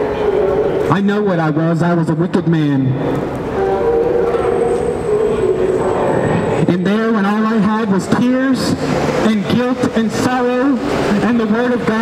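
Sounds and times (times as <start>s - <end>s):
train running overhead: 3.1s - 12.0s.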